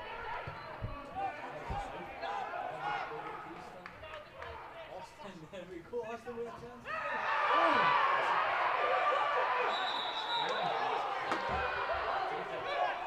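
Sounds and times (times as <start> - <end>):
referee's whistle blast: 9.7 - 10.8.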